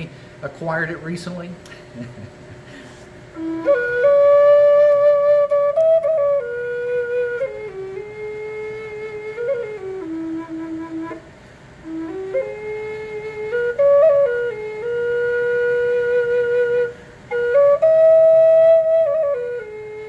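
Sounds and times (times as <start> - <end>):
flute playing slow melody: 3.3 - 20.0.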